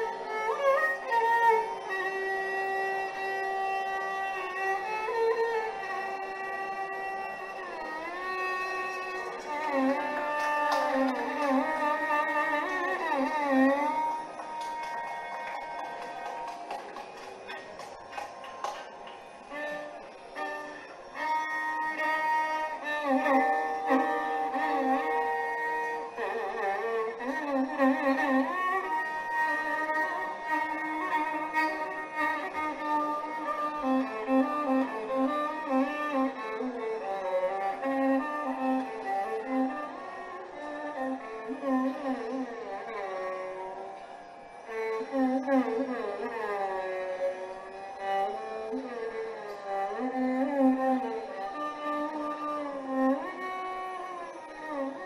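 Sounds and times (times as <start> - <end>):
violin playing ornamented melody: 0.0 - 55.0.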